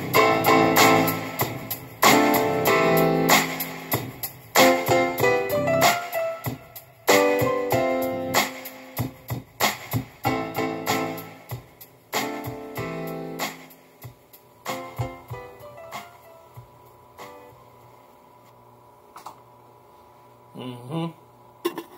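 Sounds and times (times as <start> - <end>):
electric piano chords: 0.0 - 9.4, 10.2 - 13.9, 14.6 - 17.7.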